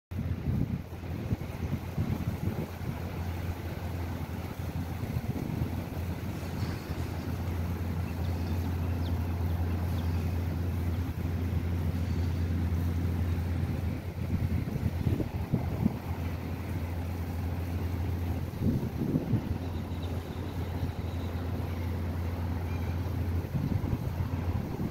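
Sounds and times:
steady low hum: 0:00.1 - 0:24.9
wind buffeting microphone: 0:00.1 - 0:24.9.

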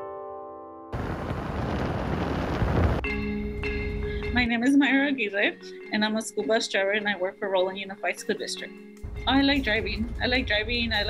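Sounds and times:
wind buffeting microphone: 0:01.0 - 0:03.0.

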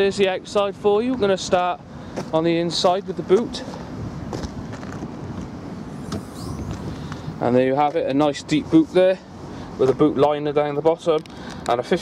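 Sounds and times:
outdoor wind and rumble: 0:00.0 - 0:12.0.

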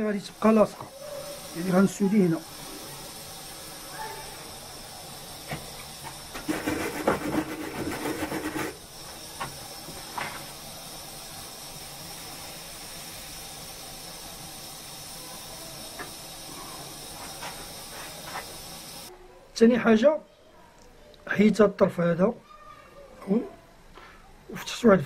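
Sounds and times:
soldering iron sizzling: 0:00.0 - 0:19.1.

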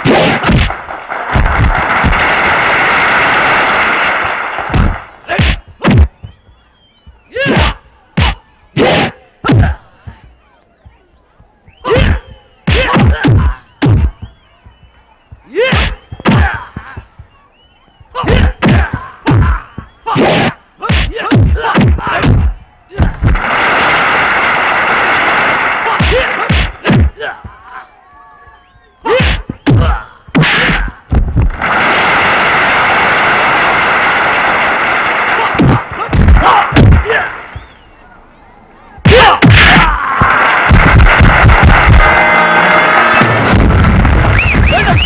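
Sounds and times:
punch and kick impact effects: 0:00.0 - 0:02.3, 0:04.7 - 0:06.2, 0:12.0 - 0:14.3, 0:20.2 - 0:23.4, 0:26.0 - 0:27.2, 0:35.6 - 0:37.2, 0:40.7 - 0:42.2, 0:43.2 - 0:45.0
loud rushing noise: 0:00.0 - 0:05.6, 0:23.1 - 0:26.8, 0:31.2 - 0:37.6, 0:40.1 - 0:45.0
crowd cheering: 0:00.0 - 0:20.8, 0:22.0 - 0:30.3, 0:30.9 - 0:45.0
fighters shouting: 0:05.2 - 0:06.1, 0:07.2 - 0:10.4, 0:11.7 - 0:14.8, 0:15.4 - 0:17.4, 0:18.0 - 0:23.3, 0:25.7 - 0:31.1, 0:35.3 - 0:37.9, 0:39.0 - 0:43.4, 0:44.3 - 0:45.0.

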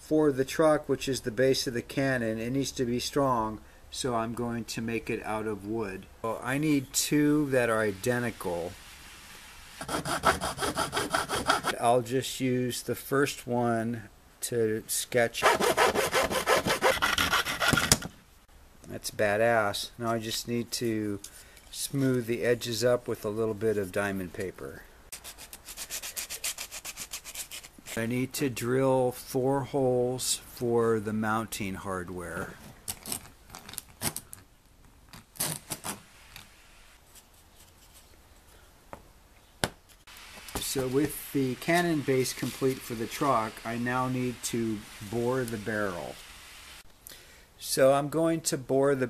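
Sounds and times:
hand saw cutting wood: 0:09.8 - 0:11.8, 0:15.4 - 0:18.1, 0:25.2 - 0:27.7.

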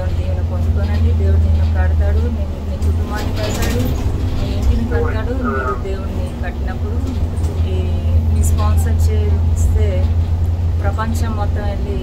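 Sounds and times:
bus rumble from inside: 0:00.0 - 0:12.0.

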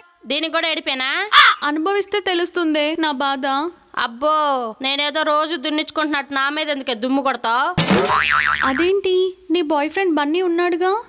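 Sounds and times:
wobbling cartoon tone: 0:07.9 - 0:08.9.

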